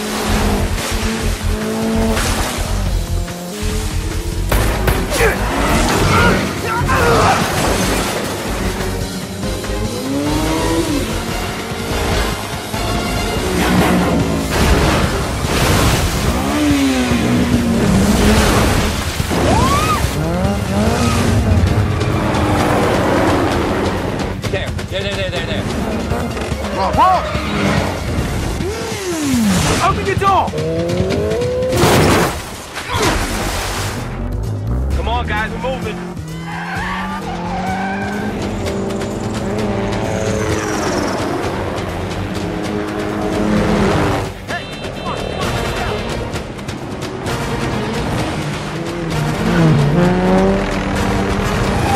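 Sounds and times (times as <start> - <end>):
splashing water spray: 0.0 - 5.1, 13.6 - 20.4, 31.8 - 34.1
car engine at high revs: 0.0 - 24.5, 25.2 - 29.8, 30.5 - 32.0, 34.2 - 44.5, 46.4 - 51.9
film score music: 0.0 - 51.9.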